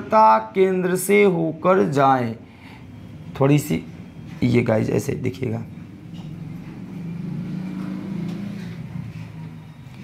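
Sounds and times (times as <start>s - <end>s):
vehicle engine running: 5.8s - 10.0s.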